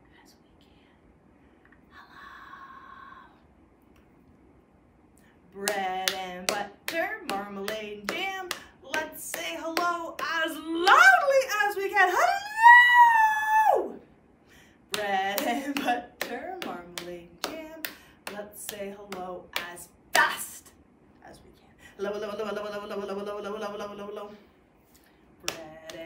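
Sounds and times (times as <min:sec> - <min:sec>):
woman chanting a rhyme: 0:05.5 - 0:12.3, 0:25.4 - 0:26.0
hand claps: 0:05.6 - 0:11.1, 0:14.9 - 0:20.4, 0:25.4 - 0:26.0.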